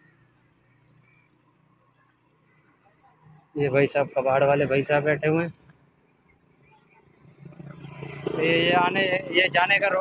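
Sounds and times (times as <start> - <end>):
faint street background: 0.0 - 10.0.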